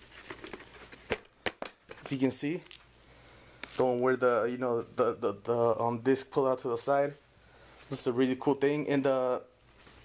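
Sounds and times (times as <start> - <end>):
packaging rustling: 0.0 - 2.1.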